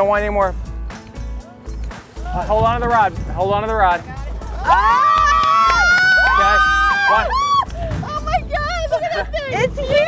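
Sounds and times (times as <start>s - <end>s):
women screaming: 4.6s - 7.7s.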